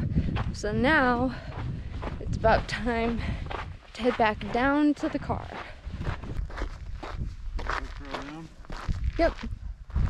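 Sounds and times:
footsteps on dirt trail: 0.0s - 10.0s
wind rumble on microphone: 0.0s - 10.0s
person speaking: 7.7s - 8.5s.

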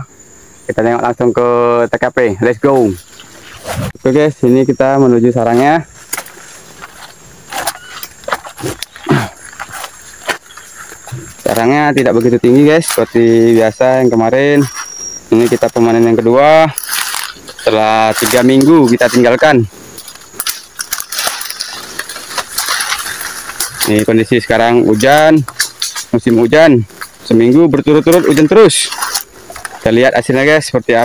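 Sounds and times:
leaves and twigs crackling: 2.2s - 31.0s
brushing past undergrowth: 2.4s - 31.0s
footsteps: 5.4s - 31.0s.

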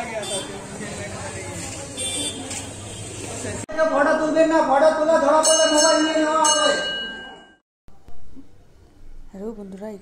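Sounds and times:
temple bell ringing: 5.3s - 7.6s.

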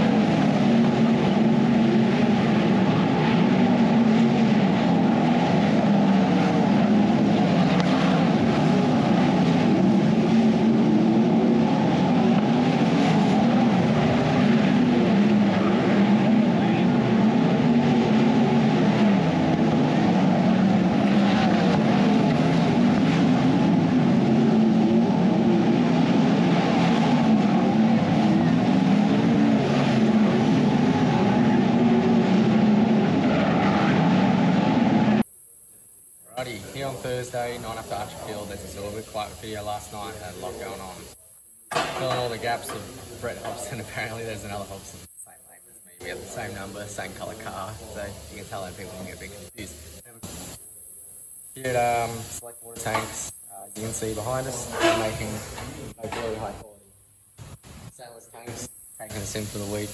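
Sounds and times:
sprint car engines racing: 0.0s - 50.6s, 51.6s - 56.8s, 57.6s - 59.9s.

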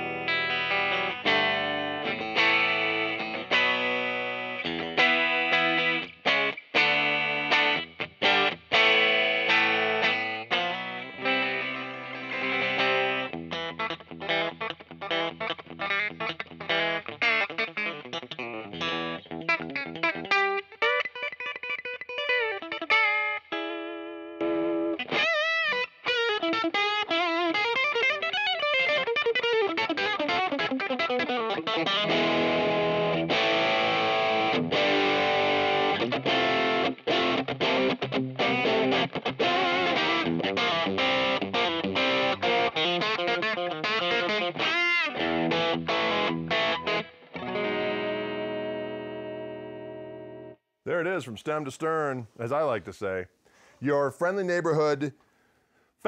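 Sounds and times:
electric guitar through an amp: 0.0s - 50.6s.

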